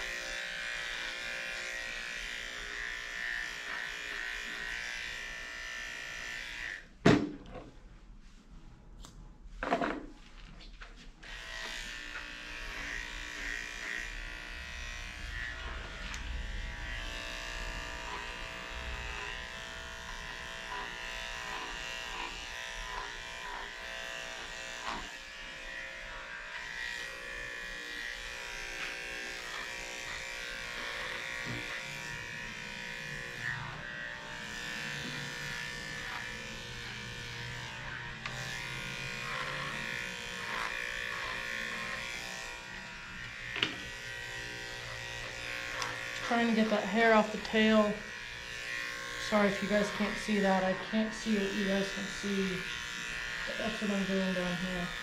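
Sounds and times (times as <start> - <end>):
electric clippers running: 0.0 - 7.0, 11.2 - 55.0.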